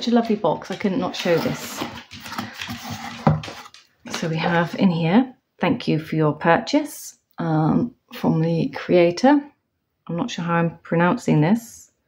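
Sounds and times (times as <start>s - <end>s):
cardboard scraping and rustling: 1.0s - 4.2s.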